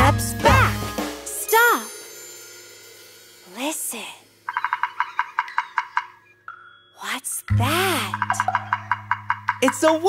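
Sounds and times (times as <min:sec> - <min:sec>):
woodpecker drumming on tree: 0:04.4 - 0:07.0, 0:07.7 - 0:10.0.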